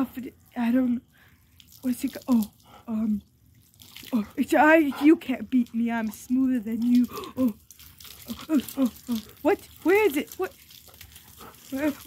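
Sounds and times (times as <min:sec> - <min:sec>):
hose spraying water on concrete: 0:03.8 - 0:12.0.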